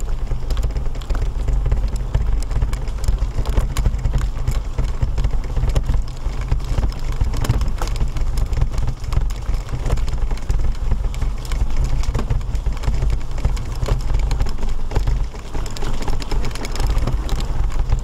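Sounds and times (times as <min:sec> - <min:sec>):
low rumble: 0:00.0 - 0:18.0
wheels crunching on gravel: 0:00.0 - 0:18.0.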